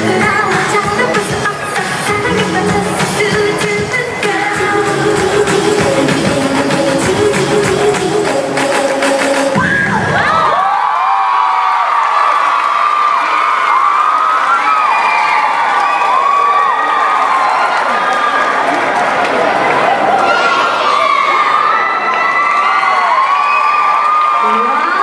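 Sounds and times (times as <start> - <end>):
pop dance music: 0.0 - 10.4
crowd cheering: 9.6 - 25.0
children shouting and screaming: 19.8 - 25.0.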